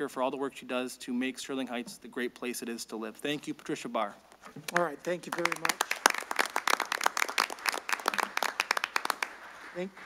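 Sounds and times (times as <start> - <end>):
people clapping: 4.7 - 9.7.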